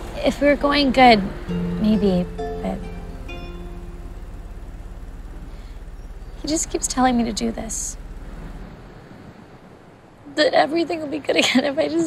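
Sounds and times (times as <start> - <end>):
low hum: 0.0 - 10.6.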